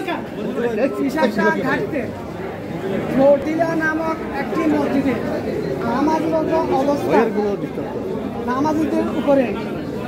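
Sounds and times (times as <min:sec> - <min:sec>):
crowd voices chattering: 0:00.0 - 0:10.0.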